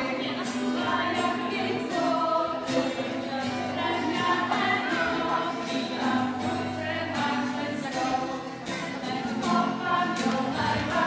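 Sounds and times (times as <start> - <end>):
adults and children singing: 0.0 - 11.0
strummed acoustic guitar: 0.0 - 11.0.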